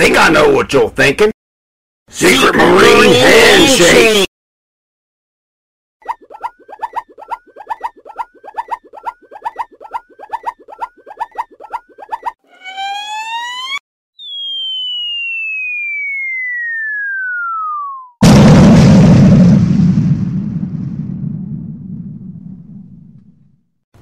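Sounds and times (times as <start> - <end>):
rising whistle: 12.2 - 18.2
long falling whistle: 12.5 - 18.2
cartoon pops with chirps: 14.2 - 16.1.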